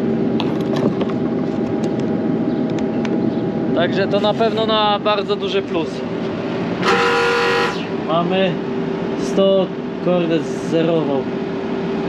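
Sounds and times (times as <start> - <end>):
faint constant hum: 0.0 - 12.0
horn-like tone: 6.8 - 7.9.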